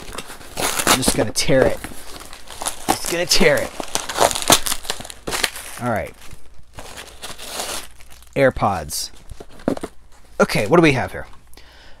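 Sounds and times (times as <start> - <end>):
box being torn open: 0.0 - 1.3, 2.1 - 5.8
packing material crinkling: 0.0 - 11.0.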